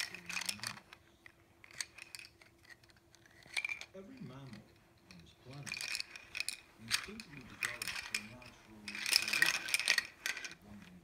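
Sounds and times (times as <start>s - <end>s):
plastic rattle clattering: 0.0s - 11.0s.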